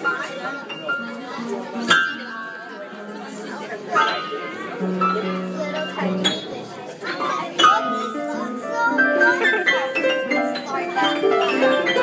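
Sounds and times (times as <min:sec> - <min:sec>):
children chattering: 0:00.0 - 0:12.0
piano keys banged: 0:03.9 - 0:06.7, 0:07.5 - 0:12.0.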